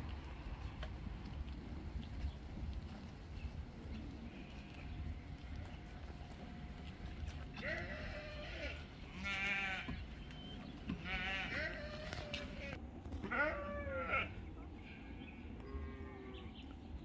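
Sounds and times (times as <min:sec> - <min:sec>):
sheep bleating: 0:07.5 - 0:10.0, 0:10.9 - 0:14.4.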